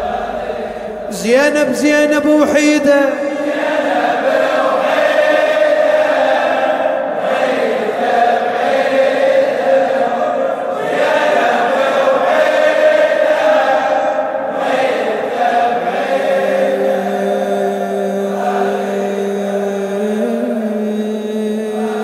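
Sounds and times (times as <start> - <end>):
men chanting in unison: 0.0 - 22.0.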